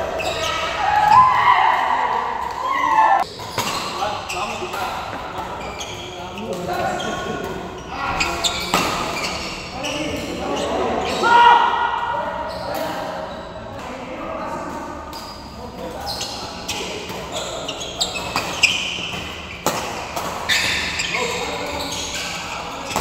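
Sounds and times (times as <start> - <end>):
players' voices: 0.0 - 23.0.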